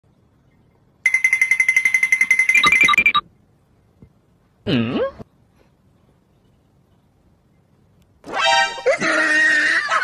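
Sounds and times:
rapid electronic beeps: 0:01.1 - 0:03.2.

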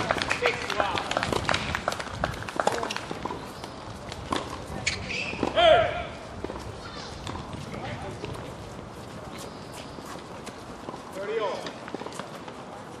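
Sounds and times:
light taps on tennis court: 0:00.2 - 0:04.6.

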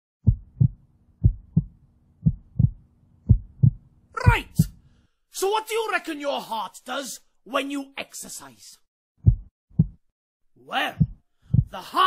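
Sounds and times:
heartbeat thumps: 0:00.2 - 0:04.8, 0:09.2 - 0:10.0, 0:11.0 - 0:11.8.

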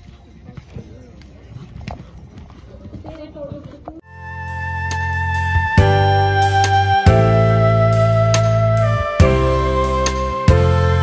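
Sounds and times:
horse hooves on sand: 0:00.0 - 0:04.1.

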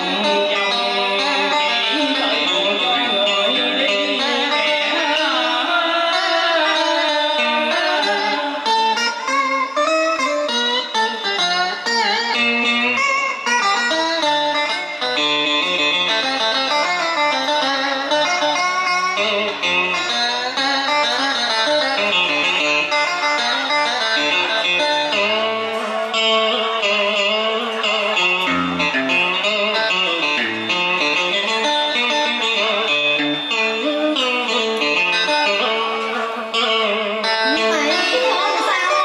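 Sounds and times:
guitar playing melody: 0:00.0 - 0:39.0.

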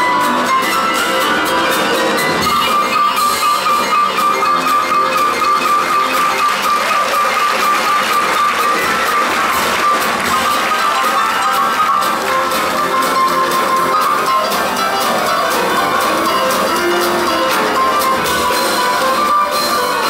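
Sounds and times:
drum kit: 0:00.0 - 0:20.0
pianos playing boogie-woogie: 0:00.0 - 0:20.0
repeated high piano note: 0:00.0 - 0:20.0.

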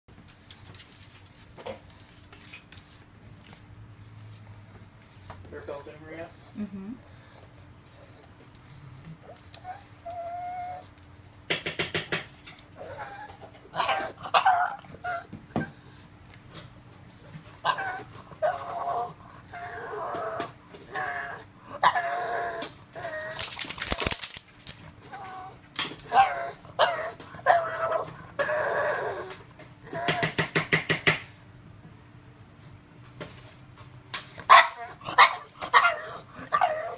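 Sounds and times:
dog whining: 0:09.2 - 0:11.1, 0:12.8 - 0:15.8, 0:17.6 - 0:24.2, 0:25.0 - 0:30.5, 0:34.5 - 0:36.9
sharp clicking rattles: 0:23.3 - 0:24.9.

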